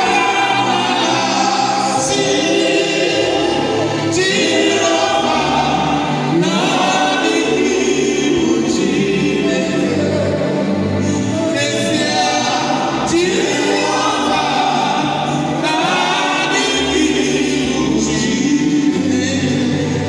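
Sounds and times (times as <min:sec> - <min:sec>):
choir singing gospel music: 0:00.0 - 0:20.0.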